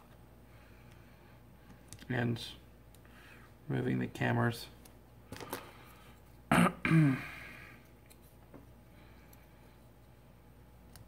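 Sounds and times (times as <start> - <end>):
man clearing his throat: 6.5 - 7.5.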